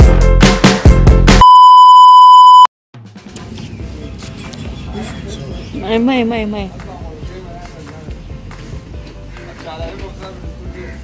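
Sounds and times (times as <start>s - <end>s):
electronic beep tone: 1.4s - 2.7s
background music: 3.0s - 11.0s.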